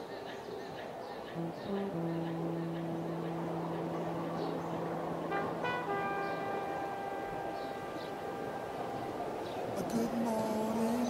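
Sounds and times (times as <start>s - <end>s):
traffic-like hiss: 0.0s - 11.0s
short horn blips: 1.4s - 9.9s
held horn tone: 1.4s - 10.9s
low hum: 1.4s - 11.0s.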